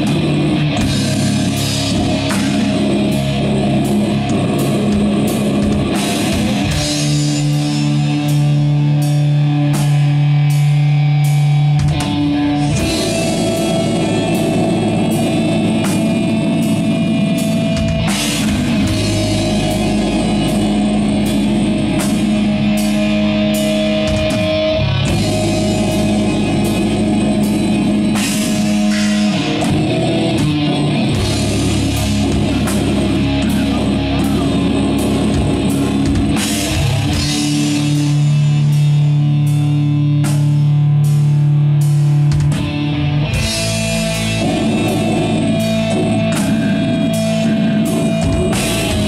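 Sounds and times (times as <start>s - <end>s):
doom metal band playing: 0.0s - 49.0s
drums: 0.0s - 49.0s
held guitar chords: 0.0s - 49.0s.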